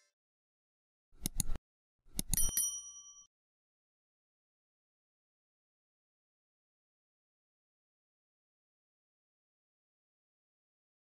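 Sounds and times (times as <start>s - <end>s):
mouse clicks: 1.2s - 2.5s
bright bell ding: 2.3s - 3.3s.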